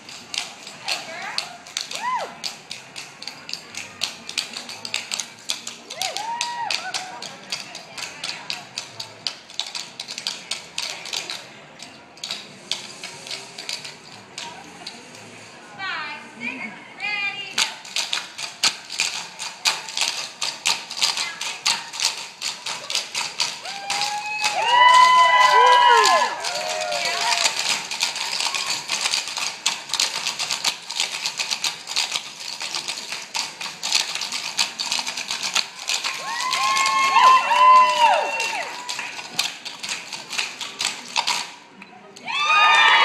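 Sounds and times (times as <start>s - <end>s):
high voices whooping: 1.9s - 2.4s, 5.9s - 7.2s, 23.6s - 27.8s, 36.1s - 39.0s, 42.2s - 43.0s.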